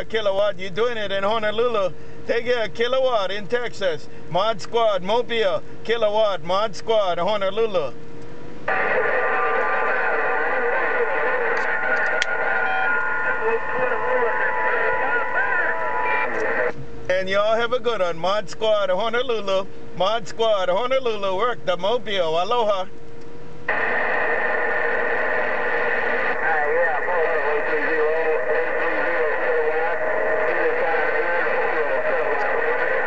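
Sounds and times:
radio band noise hiss: 0.0s - 22.9s, 23.7s - 33.0s
steady whistle: 12.4s - 13.4s.

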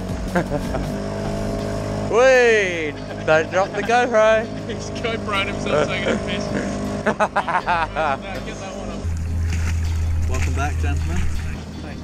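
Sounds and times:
outboard motor humming: 0.0s - 12.0s.

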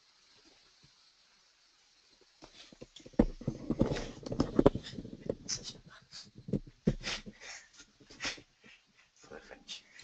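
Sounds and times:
microphone handling clicks and knocks: 2.8s - 5.8s, 6.4s - 7.1s.

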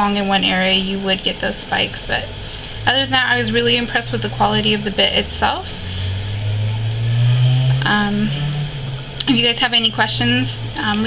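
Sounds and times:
electric motor hum: 2.3s - 9.4s.

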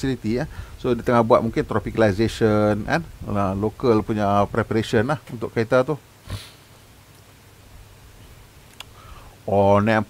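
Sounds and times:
person sniffing: 6.2s - 6.7s, 8.9s - 9.3s.

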